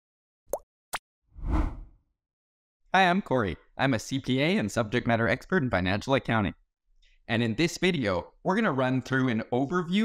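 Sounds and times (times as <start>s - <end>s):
deep whoosh: 1.4s - 1.9s.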